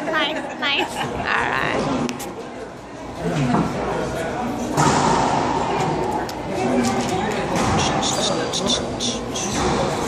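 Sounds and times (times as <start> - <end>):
people talking: 3.2 - 10.0
ball thudding off walls and racquets: 4.7 - 6.1.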